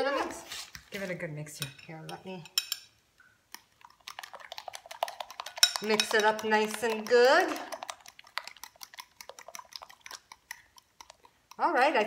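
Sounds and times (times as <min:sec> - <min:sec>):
utensil clinking glass bowl: 0:01.6 - 0:03.0, 0:04.0 - 0:11.7.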